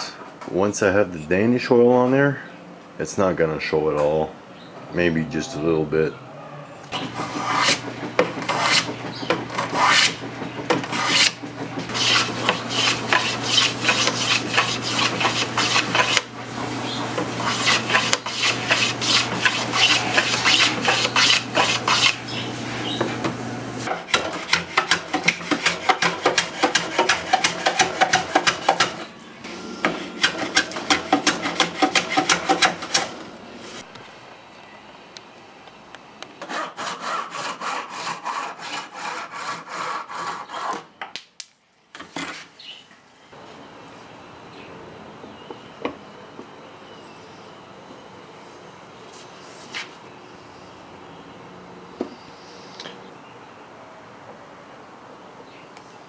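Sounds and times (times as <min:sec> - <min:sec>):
hand plane shaving wood: 0:07.0 - 0:22.4, 0:23.8 - 0:33.8, 0:36.4 - 0:40.9.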